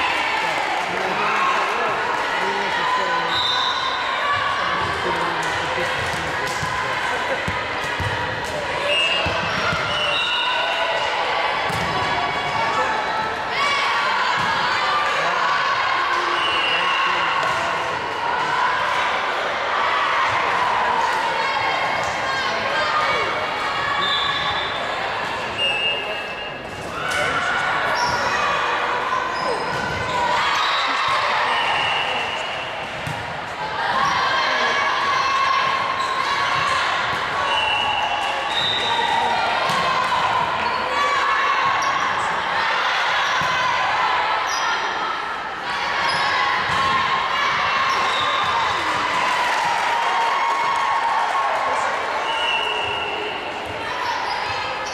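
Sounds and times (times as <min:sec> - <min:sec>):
players and spectators shouting: 0:00.0 - 0:54.9.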